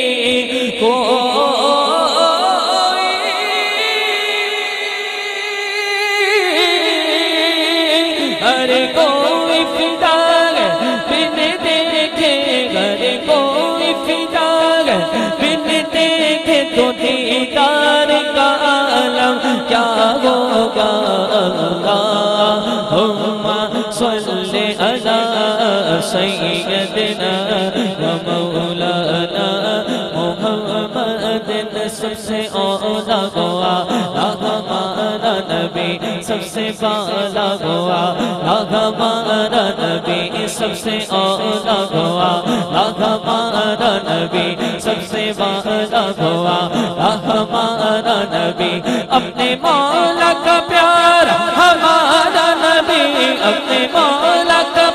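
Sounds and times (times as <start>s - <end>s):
man singing devotional chant: 0.0s - 54.9s.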